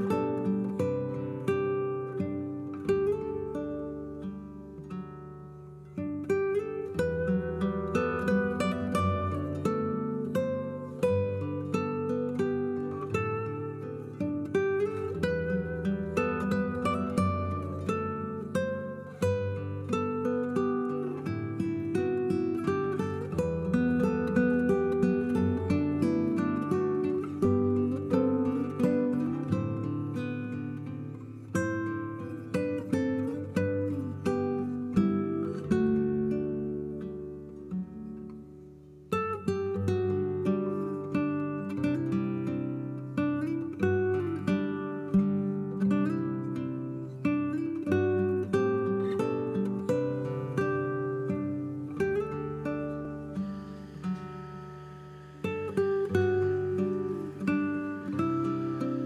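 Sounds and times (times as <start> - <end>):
plucked acoustic guitar music: 0.0 - 59.0.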